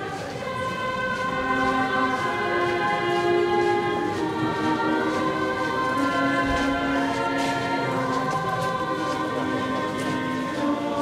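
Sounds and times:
solemn sacred music chords: 0.0s - 11.0s.

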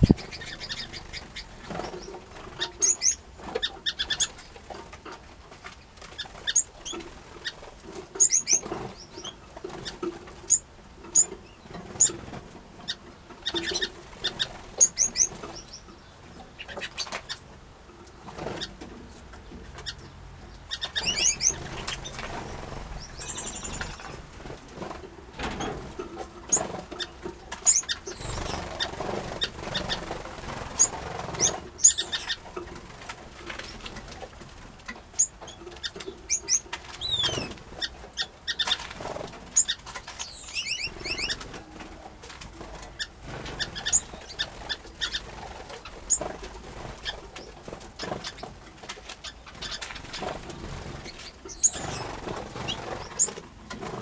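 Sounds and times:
wing flutters: 0.0s - 4.4s, 20.9s - 27.0s, 27.6s - 34.3s, 49.4s - 54.0s
finches chirping: 0.0s - 4.6s, 6.2s - 12.2s, 12.9s - 17.4s, 19.8s - 24.3s, 26.5s - 32.5s, 35.2s - 38.8s, 39.5s - 41.4s, 43.0s - 46.4s, 51.0s - 53.4s
birds clicking on wooden boxes: 0.0s - 54.0s.

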